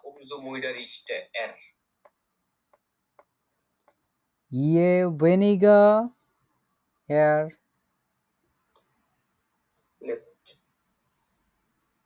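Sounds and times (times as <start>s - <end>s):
stylus tapping on tablet screen: 2.0s - 4.1s.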